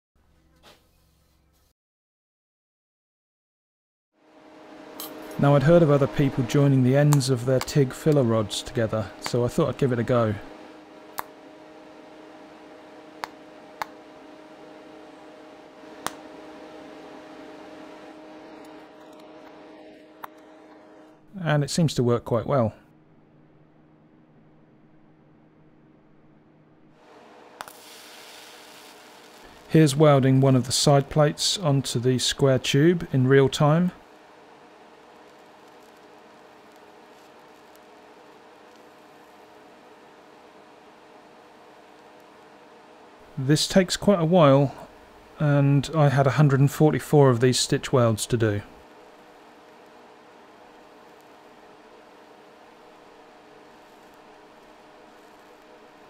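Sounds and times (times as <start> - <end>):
welding machine humming: 4.2 - 21.4, 26.8 - 56.0.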